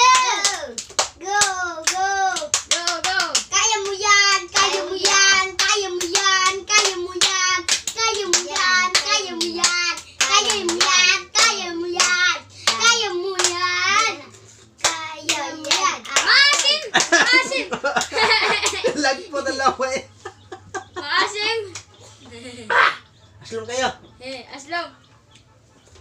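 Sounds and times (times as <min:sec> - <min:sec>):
hands clapping in rhythm: 0:00.0 - 0:14.2, 0:14.8 - 0:18.9, 0:21.7 - 0:21.9
children chanting: 0:00.0 - 0:18.3.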